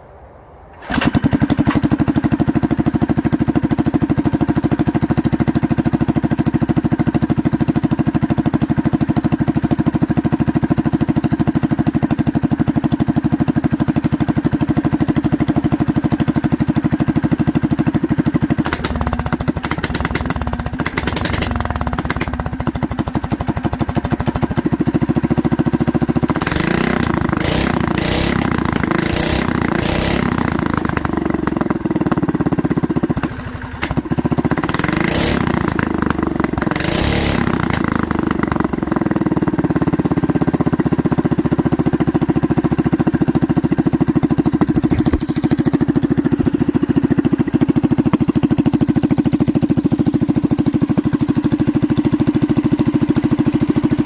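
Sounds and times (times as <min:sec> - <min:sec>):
small engine starting and idling: 0:00.5 - 0:54.0.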